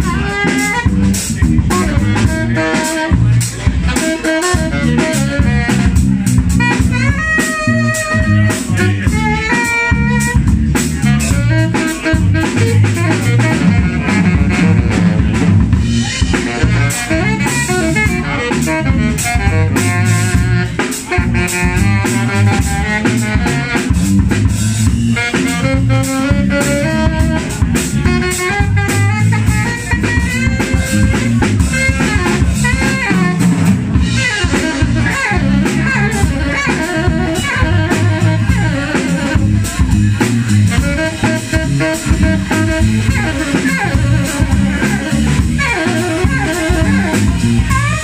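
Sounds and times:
drum kit beat: 0.0 - 48.0
electric bass: 0.0 - 48.0
saxophone melody: 0.0 - 48.0.

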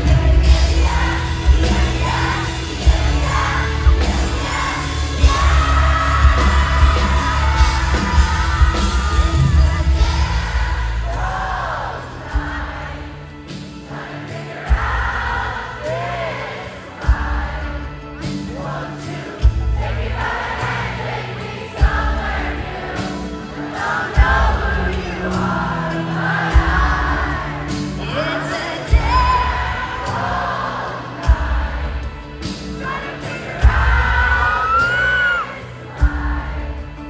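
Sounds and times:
heavy drum and bass hits: 0.0 - 13.0
person singing: 0.0 - 19.4, 23.1 - 31.9
live rock band playing: 0.0 - 37.0
high whoop from crowd: 34.5 - 35.6.

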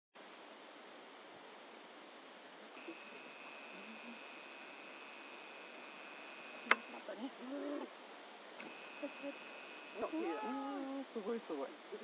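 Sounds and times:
steady hiss: 0.2 - 12.0.

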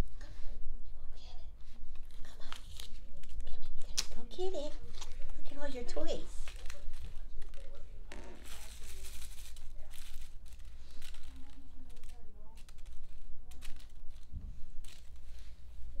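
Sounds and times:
paper ball crinkling: 1.6 - 16.0.

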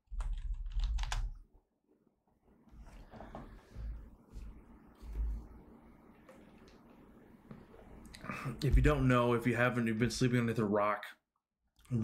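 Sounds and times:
keyboard typing: 0.1 - 1.4.

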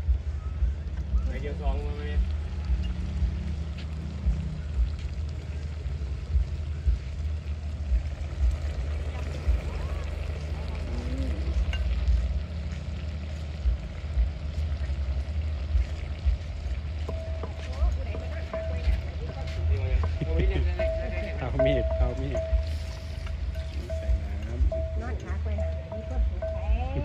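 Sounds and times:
curry simmering: 0.0 - 27.0.

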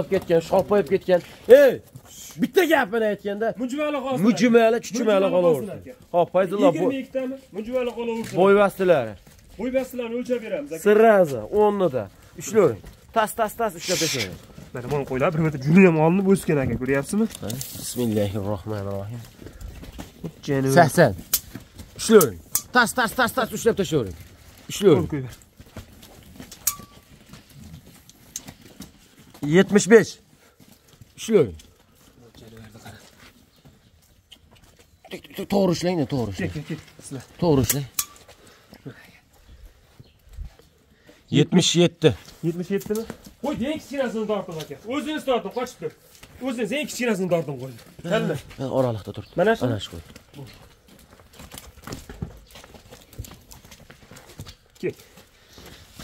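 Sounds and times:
sheep hooves clattering: 0.0 - 56.0
shuffling and handling noise: 5.7 - 35.1
tape measure click and ring: 26.6 - 27.0.

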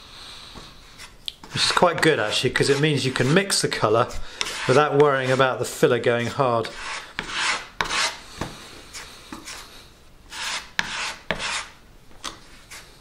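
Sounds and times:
metal knife scraping filler on wood: 1.0 - 5.6, 6.2 - 8.2, 10.3 - 12.9.

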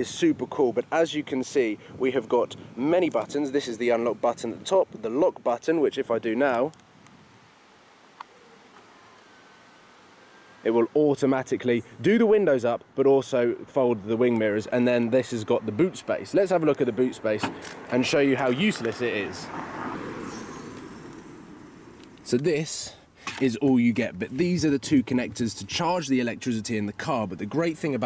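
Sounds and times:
road traffic rushing: 14.7 - 24.7.

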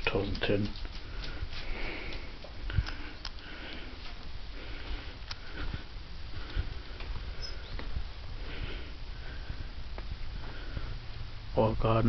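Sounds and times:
breathing close to microphone: 1.0 - 11.5.

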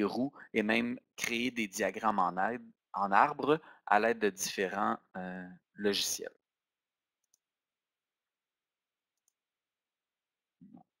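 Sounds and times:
computer mouse clicks: 9.2 - 9.4.

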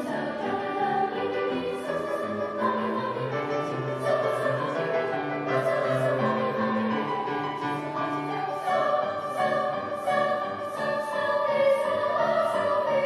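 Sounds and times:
choir singing in parts: 0.0 - 13.0
grand piano accompaniment: 0.0 - 13.0.

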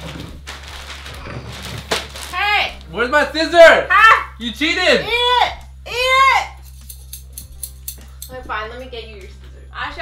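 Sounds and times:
wrapping paper rustling: 0.0 - 2.9.

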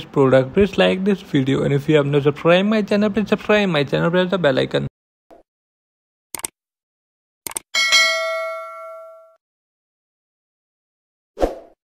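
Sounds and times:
bell ding: 7.8 - 9.4.

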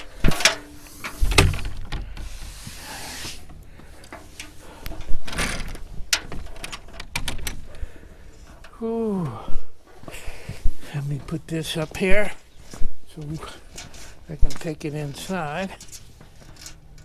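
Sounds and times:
door scraping: 0.0 - 7.7.

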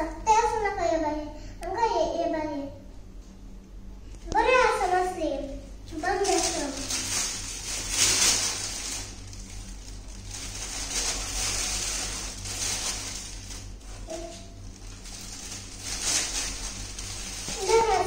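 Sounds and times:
young child's voice: 0.0 - 2.8, 4.2 - 7.0, 14.0 - 14.6, 17.5 - 18.0
low electrical hum: 0.0 - 18.0.

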